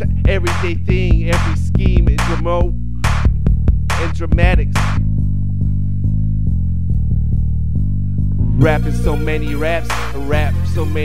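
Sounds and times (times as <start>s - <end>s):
plucked bass line: 0.0s - 11.0s.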